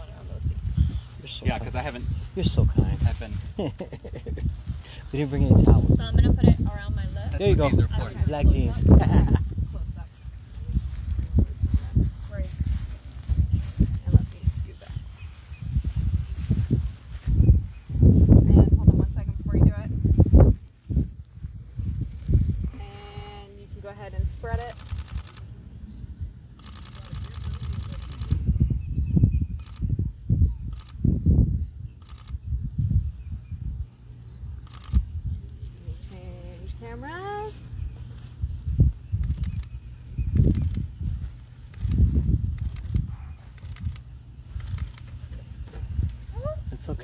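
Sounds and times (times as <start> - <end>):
voices: 0.0 - 13.2, 22.7 - 28.5, 34.7 - 37.7, 45.3 - 47.0
wind rumble on microphone: 0.0 - 47.0
camera shutter clicking: 24.6 - 25.5, 26.6 - 28.4.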